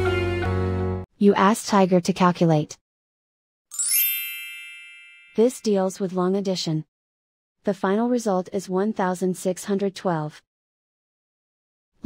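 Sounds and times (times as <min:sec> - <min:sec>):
bright chime ding: 0:03.7 - 0:05.4.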